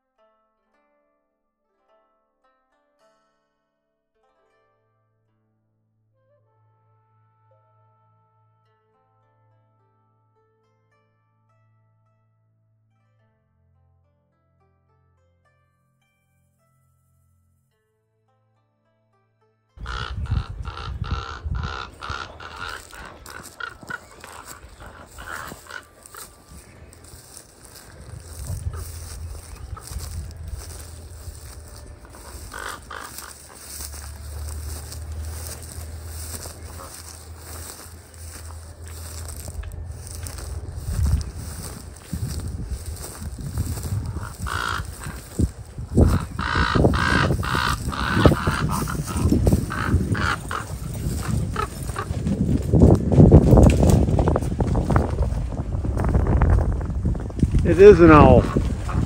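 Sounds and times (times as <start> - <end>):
ravens croaking: 19.8 - 54.3, 57.7 - 59.0
wind rumble on microphone: 19.8 - 59.0.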